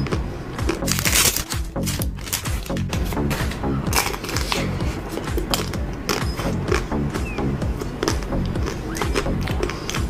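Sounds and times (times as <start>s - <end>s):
crunching of ice cream bar shell: 0.0s - 2.9s, 3.9s - 4.7s
background music: 0.0s - 10.0s.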